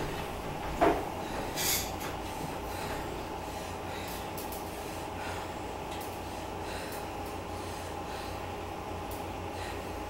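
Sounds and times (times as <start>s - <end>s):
elliptical trainer rumble: 0.0s - 10.0s.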